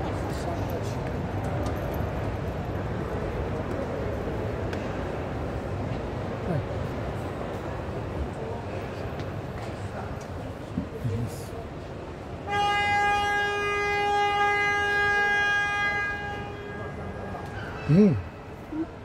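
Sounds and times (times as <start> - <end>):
crowd chatter in hall: 0.0 - 19.0
loud horn-like tone: 12.4 - 18.0.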